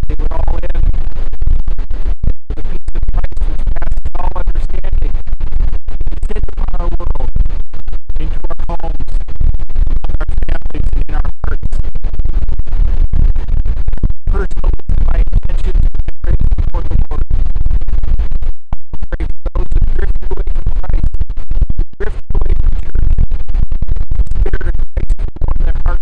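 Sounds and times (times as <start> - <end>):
faint man's voice: 0.0 - 0.8, 3.2 - 5.1, 6.2 - 7.3, 8.2 - 9.2, 10.2 - 11.8, 14.3 - 17.2, 19.0 - 21.0, 22.0 - 22.6, 24.4 - 26.0
wind buffeting microphone: 0.0 - 26.0.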